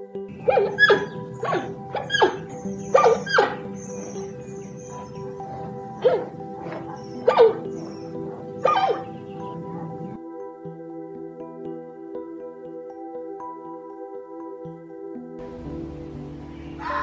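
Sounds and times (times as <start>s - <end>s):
background music with held notes: 0.0s - 17.0s
animal barking calls: 0.3s - 10.2s.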